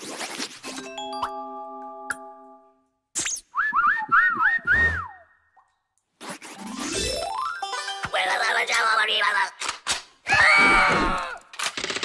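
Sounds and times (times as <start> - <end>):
scratchy scribbling noise: 0.0 - 0.9, 6.2 - 6.8
whistle-like squeaks: 3.2 - 5.4.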